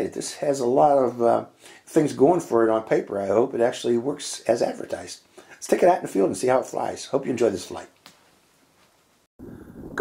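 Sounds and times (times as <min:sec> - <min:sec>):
wind hiss on microphone: 0:09.4 - 0:10.0.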